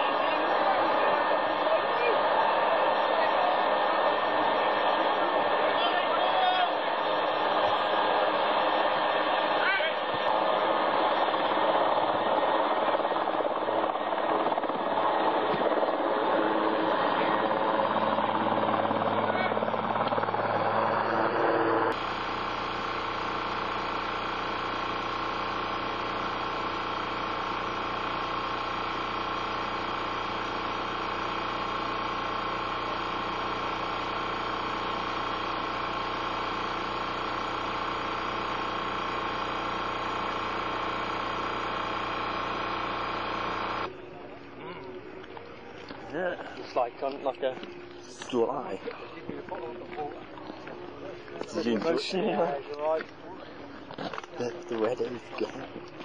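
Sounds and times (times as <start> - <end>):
helicopter engines and rotor roar: 0.0 - 56.0
steady hum with fixed tones: 0.0 - 56.0.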